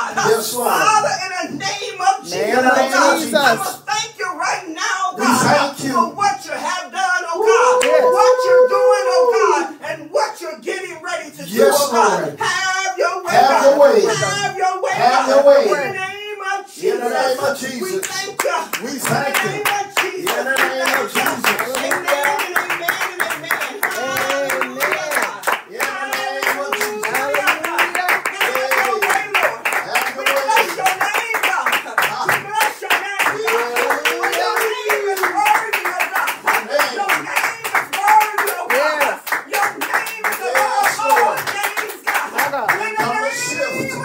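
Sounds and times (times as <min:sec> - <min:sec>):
man's voice: 0:00.0 - 0:44.0
woman talking: 0:02.4 - 0:03.8
hands clapping: 0:07.5 - 0:08.2, 0:17.8 - 0:44.0.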